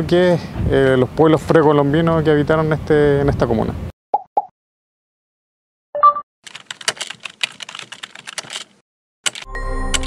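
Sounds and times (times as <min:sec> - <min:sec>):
brief tone: 0:06.0 - 0:06.2
computer keyboard typing: 0:06.5 - 0:10.0.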